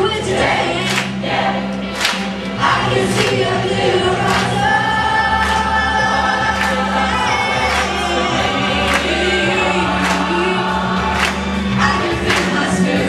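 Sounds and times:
choir singing long notes: 0.1 - 13.0
backing track with steady beat: 0.2 - 13.0.

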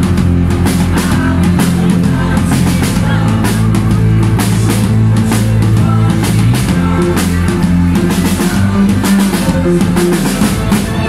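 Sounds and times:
bass guitar: 0.0 - 11.0
drum kit steady beat: 0.0 - 11.0
electric guitar: 0.0 - 11.0.

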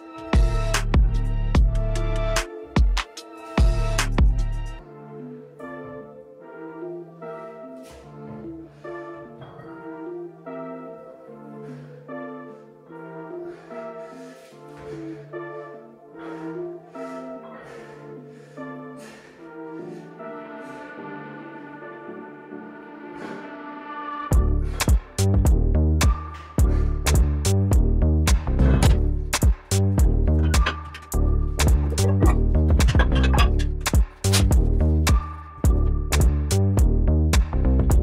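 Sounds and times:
melodic background music: 0.0 - 38.0.

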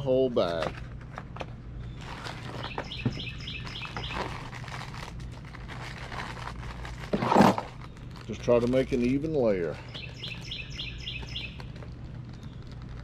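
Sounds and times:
bird chirping: 1.8 - 4.4, 9.7 - 12.8
bag clicks: 3.8 - 9.2
dry mix pouring from a bag: 3.9 - 10.4, 11.2 - 13.0.

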